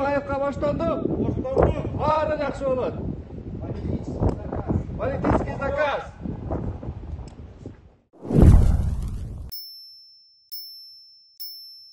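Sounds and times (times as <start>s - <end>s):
whoosh: 8.2s - 9.5s
high bell-like dings: 9.5s - 11.9s.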